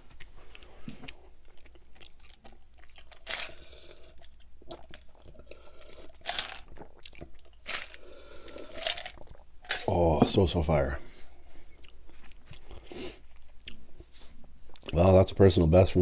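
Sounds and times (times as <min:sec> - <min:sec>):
mouth and handling noises: 0:00.0 - 0:15.1.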